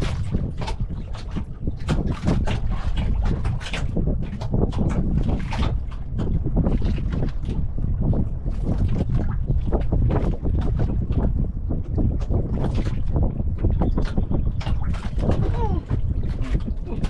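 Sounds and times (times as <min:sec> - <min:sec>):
water splashing against boat hull: 0:00.0 - 0:17.0
wind buffeting microphone: 0:00.0 - 0:17.0.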